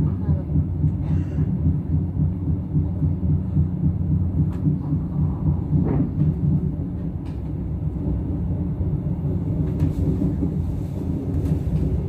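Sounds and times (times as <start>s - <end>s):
train rumbling inside carriage: 0.0s - 12.0s.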